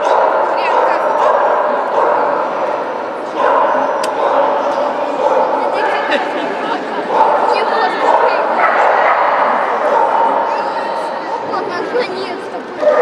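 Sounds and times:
hall chatter: 0.0 - 13.0.

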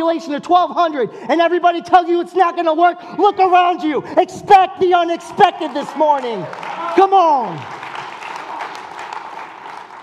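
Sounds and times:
crowd applauding: 5.6 - 10.0.

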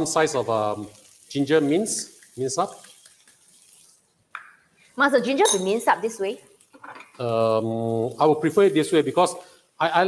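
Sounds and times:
ginger sizzling in oil: 0.0 - 10.0.

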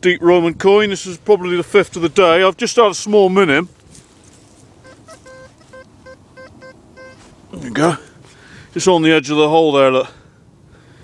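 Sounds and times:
metal detector beeping: 4.8 - 7.7.

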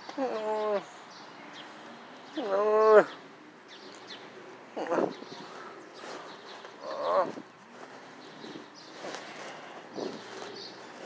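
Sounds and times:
man's wavering vocal cry: 2.4 - 3.1.

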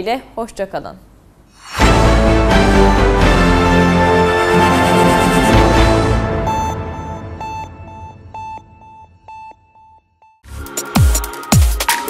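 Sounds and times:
news theme music: 1.6 - 11.8
short electronic beeps: 6.3 - 10.4.

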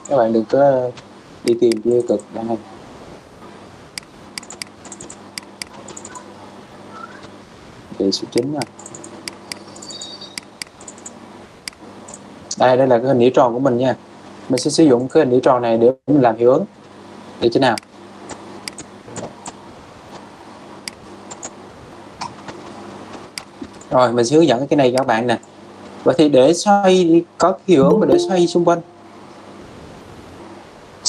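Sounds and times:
faint steady hum: 0.0 - 31.0
computer mouse clicking: 1.5 - 2.3, 4.0 - 6.2, 8.4 - 9.6, 10.4 - 12.2, 17.8 - 19.6, 20.8 - 21.6.

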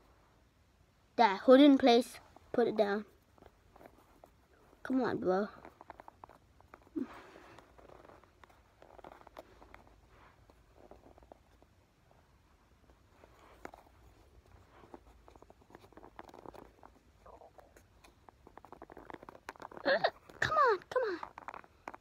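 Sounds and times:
soft rustling: 1.4 - 22.0.

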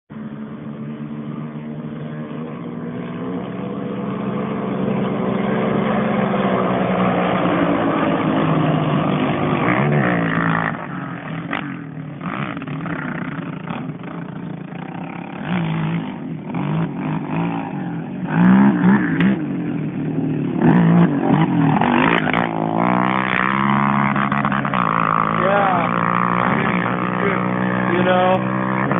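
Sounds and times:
atv engines revving: 0.1 - 28.9.

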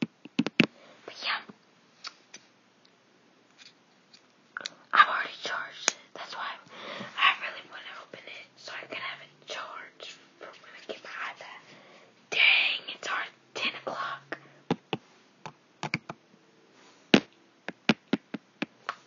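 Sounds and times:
person whispering: 1.1 - 1.5, 4.6 - 11.7, 12.3 - 14.4.

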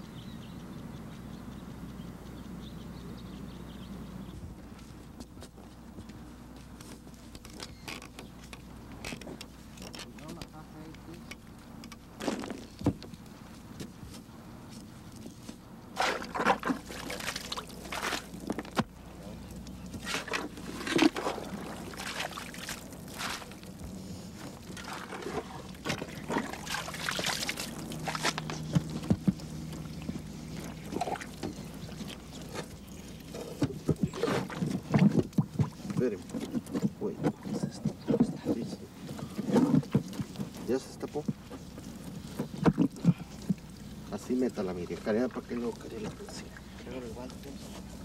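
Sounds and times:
shovels striking and scraping soil: 15.9 - 18.9, 20.0 - 23.6.

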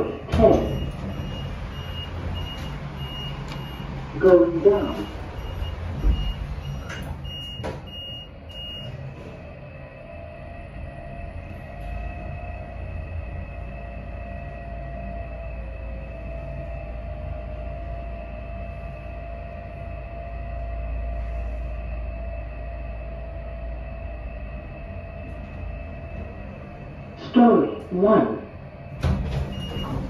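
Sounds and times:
elevator door beep: 0.0 - 10.0, 28.8 - 30.0
elevator doors clunking: 0.0 - 10.0, 24.9 - 30.0
elevator hum and rumble: 0.0 - 30.0.

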